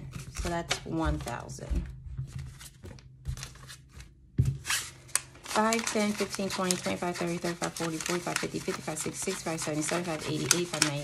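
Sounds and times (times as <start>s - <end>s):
banknotes being flipped: 2.4s - 11.0s.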